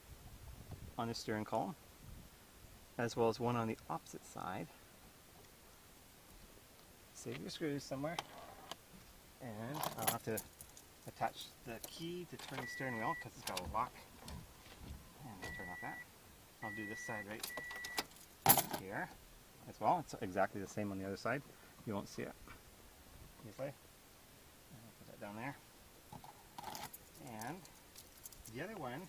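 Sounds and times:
man talking: 1.0s - 1.8s, 3.0s - 4.8s, 7.2s - 8.2s, 9.4s - 14.1s, 15.2s - 16.0s, 16.6s - 17.6s, 18.7s - 22.5s, 23.4s - 23.8s, 24.7s - 25.6s, 27.2s - 27.7s, 28.5s - 29.0s
handling noise: 9.7s - 10.9s, 11.7s - 16.0s, 17.1s - 19.0s, 26.1s - 29.0s.

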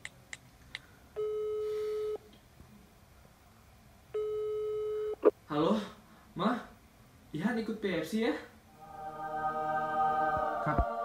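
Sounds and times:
phone ringback tone: 1.2s - 2.2s, 4.2s - 5.3s.

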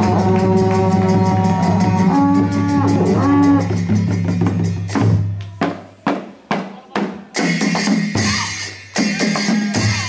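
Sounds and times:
barrel drums beating: 0.0s - 10.0s.

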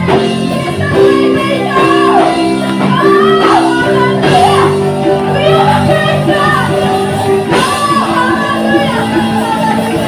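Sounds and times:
singers singing into microphones: 0.0s - 10.0s
worship band playing: 0.0s - 10.0s.

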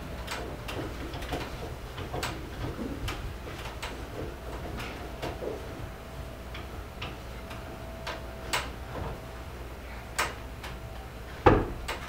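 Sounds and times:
wooden clicks and knocks: 0.2s - 5.6s.

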